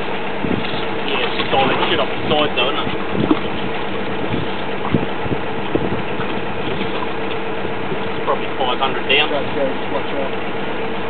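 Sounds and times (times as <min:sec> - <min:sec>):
drilling rig engine running: 0:00.0 - 0:11.0.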